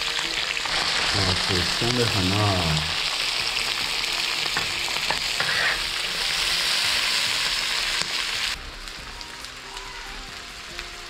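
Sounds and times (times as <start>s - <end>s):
food sizzling in hot oil: 0.0s - 11.0s
metal spatula scraping a wok: 5.1s - 6.8s.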